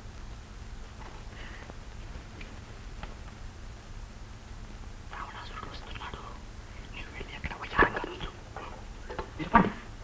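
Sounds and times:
people whispering: 5.1s - 8.8s.

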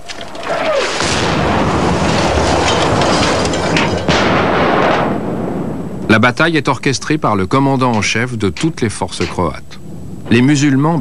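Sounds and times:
gunfire: 0.8s - 5.6s
shell blasts: 0.9s - 5.5s.

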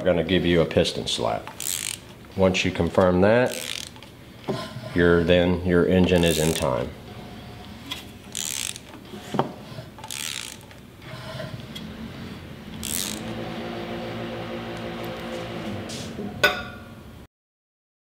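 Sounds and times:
ratchet wrench pawl clicking: 1.5s - 2.1s, 3.5s - 4.0s, 6.2s - 6.8s, 8.3s - 9.0s, 10.0s - 10.8s, 12.8s - 13.3s.

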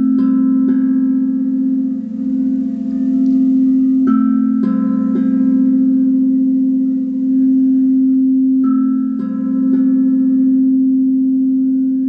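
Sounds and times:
crystal singing bowl humming: 0.0s - 12.0s.

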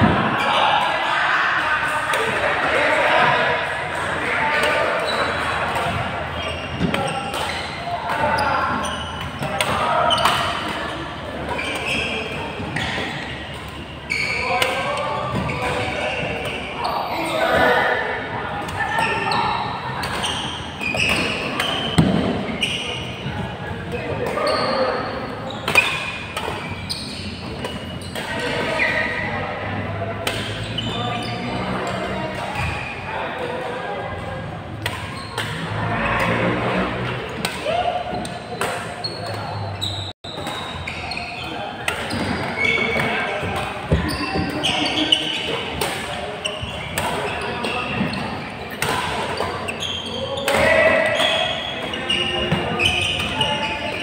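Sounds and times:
echoing chatter of many voices: 0.0s - 54.0s
badminton rackets hitting shuttlecock: 25.6s - 26.7s, 30.2s - 30.7s, 34.8s - 35.7s, 37.3s - 39.4s, 41.8s - 49.7s.

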